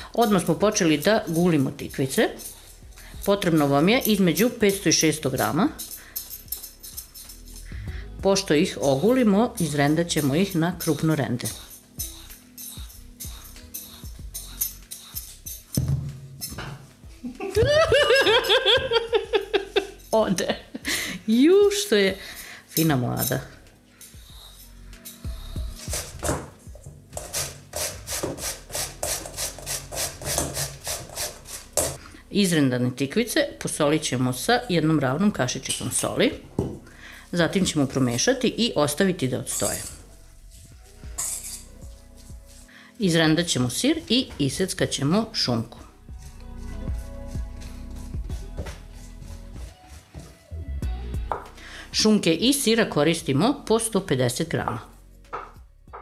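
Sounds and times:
soft background music: 0.0s - 56.0s
grater rasping strokes: 8.9s - 15.8s, 24.0s - 26.5s, 27.2s - 32.0s, 45.6s - 50.3s.

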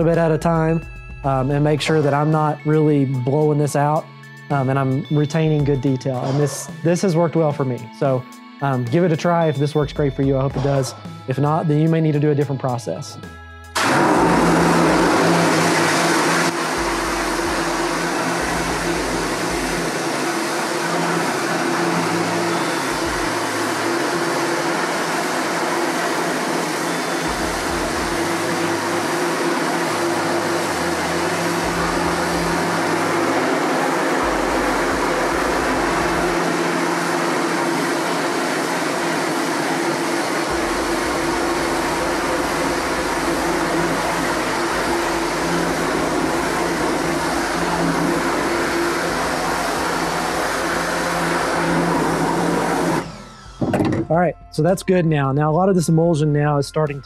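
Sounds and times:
water jet spraying: 13.8s - 53.1s
pressure washer humming: 13.8s - 54.1s.

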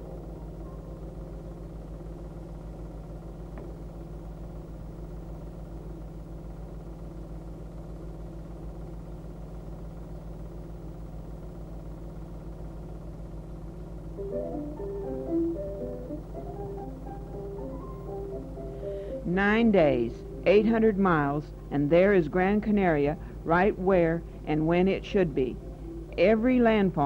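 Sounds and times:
low pulsing mechanical drone: 0.0s - 27.0s.

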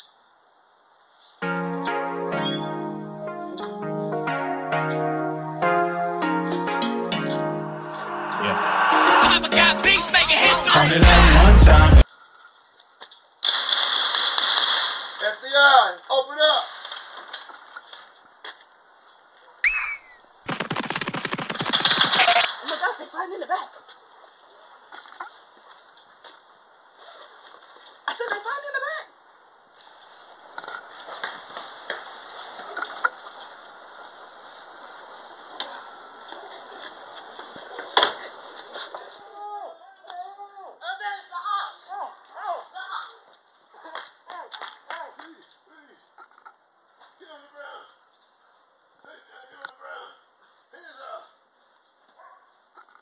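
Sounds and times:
short rising and falling tones: 1.4s - 12.0s
sharp loud crack: 20.5s - 22.7s.

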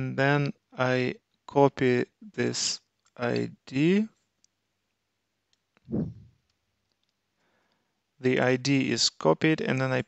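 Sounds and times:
short falling vocal sound: 5.9s - 6.3s.

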